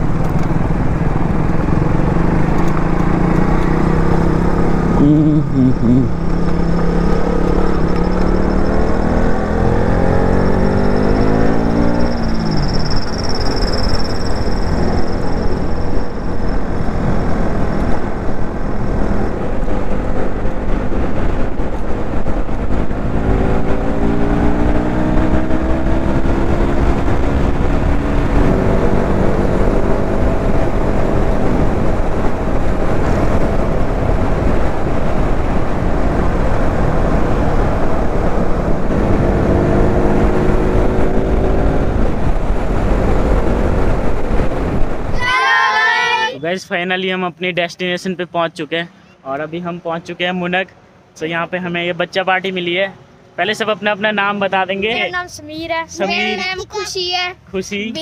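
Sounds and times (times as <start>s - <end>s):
motorcycle engine shifting gears: 0.0s - 45.1s
wind rush on microphone: 0.0s - 45.2s.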